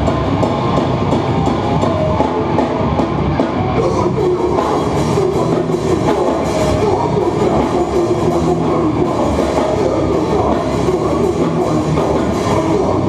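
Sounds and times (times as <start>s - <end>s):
live hardcore band playing: 0.0s - 13.0s.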